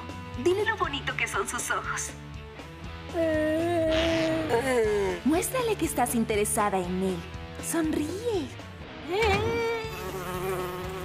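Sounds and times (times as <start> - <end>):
cartoon girl moaning: 3.1 - 5.2.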